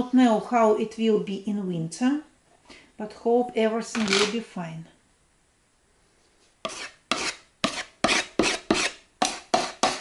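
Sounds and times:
putty knife scraping filler on wood: 6.6 - 10.0.

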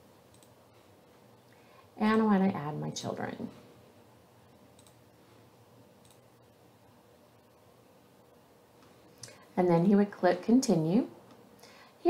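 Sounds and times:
soft computer mouse clicks: 0.3 - 0.6, 4.7 - 5.0, 6.0 - 6.2.

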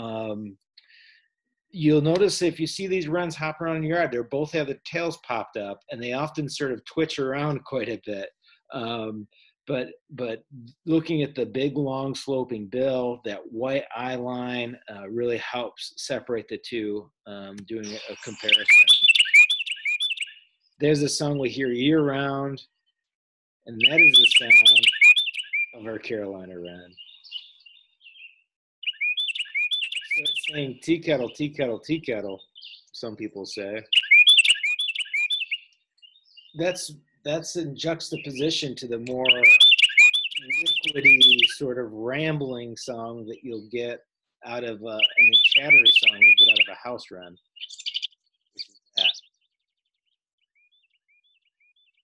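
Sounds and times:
wren song: 17.1 - 22.9, 23.7 - 43.7, 44.4 - 49.6.

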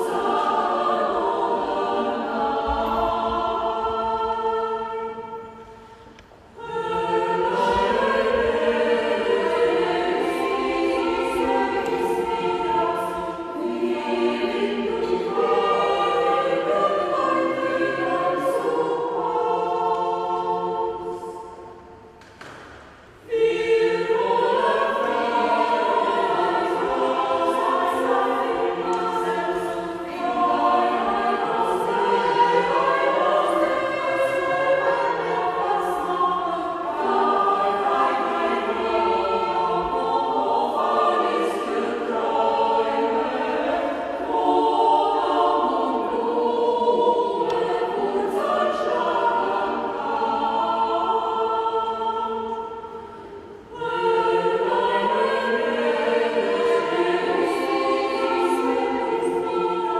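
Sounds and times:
mixed choir singing unaccompanied: 0.0 - 59.9.

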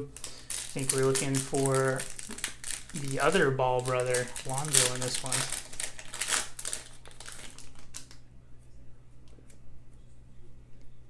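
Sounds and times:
foil wrapper crinkling: 0.0 - 8.2.

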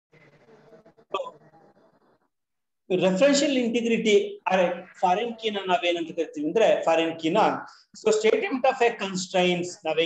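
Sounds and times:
faint background murmur: 0.1 - 2.4
person hiccup-like vocal burst: 1.1 - 1.4.

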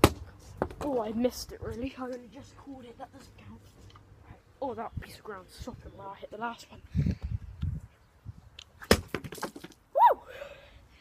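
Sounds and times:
stone striking plastic bottles: 8.8 - 9.8.

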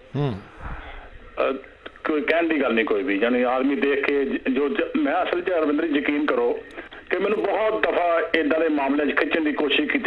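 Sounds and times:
man humming acknowledgment: 0.0 - 0.9
brief vocal sound: 0.0 - 1.0.

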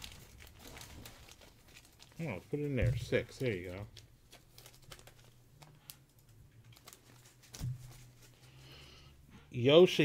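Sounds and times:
plastic sleeves rustling: 0.0 - 9.1.

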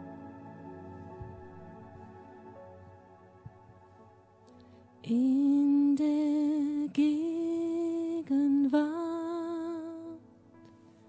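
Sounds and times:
woman singing with vibrato: 5.1 - 10.2.

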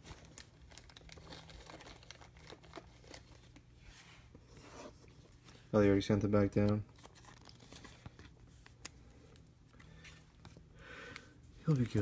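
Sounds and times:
cards crinkling and ticking: 0.0 - 3.7, 6.4 - 12.0.

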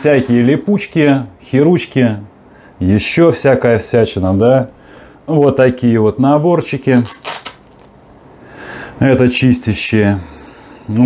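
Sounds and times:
hook-and-loop strap tearing open: 6.9 - 8.0
cloth rustling: 6.9 - 8.3.

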